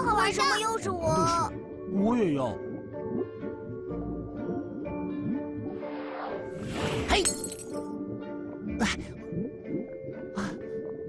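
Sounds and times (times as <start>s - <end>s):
cheerful background music: 0.0s - 11.0s.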